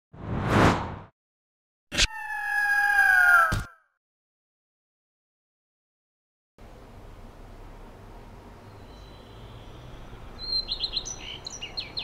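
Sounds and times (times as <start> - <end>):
bird of prey screech: 1.9 - 3.9.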